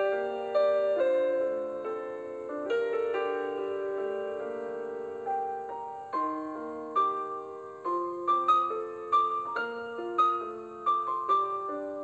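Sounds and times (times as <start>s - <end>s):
slow gentle piano melody: 0.0s - 12.0s.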